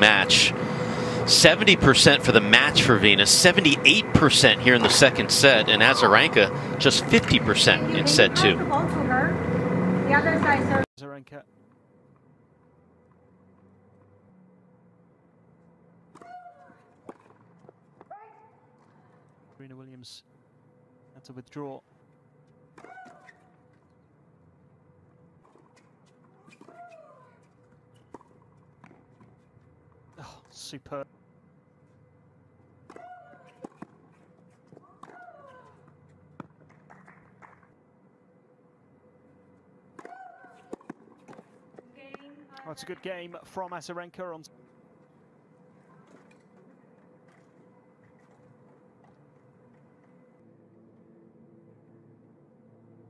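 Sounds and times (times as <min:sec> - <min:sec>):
steady low hum: 0:00.0 - 0:16.1
tennis ball impacts: 0:39.9 - 0:42.3.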